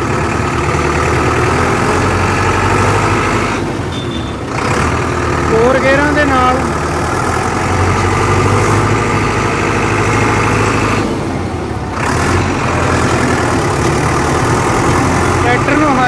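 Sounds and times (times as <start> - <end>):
tractor diesel engine running: 0.0 - 16.0.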